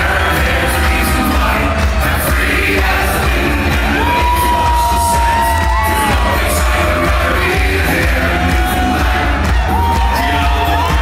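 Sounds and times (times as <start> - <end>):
crowd yelling and singing along: 0.0 - 11.0
loud music with heavy bass: 0.0 - 11.0.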